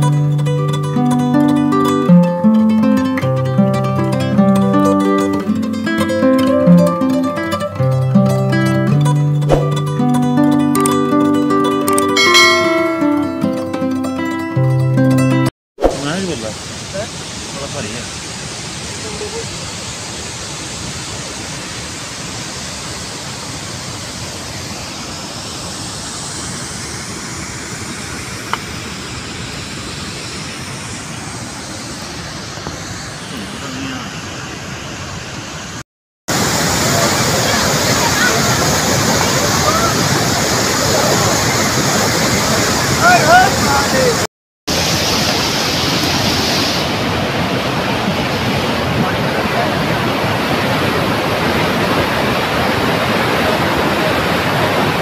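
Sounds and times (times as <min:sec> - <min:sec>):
fast river rushing: 0:12.2 - 0:13.5, 0:15.8 - 0:55.0
water rushing down rocks: 0:15.8 - 0:55.0
faint voices: 0:36.9 - 0:44.2.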